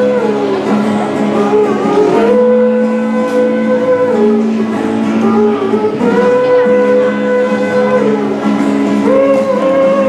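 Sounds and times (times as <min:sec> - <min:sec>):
acoustic guitar chord: 0:00.0 - 0:10.0.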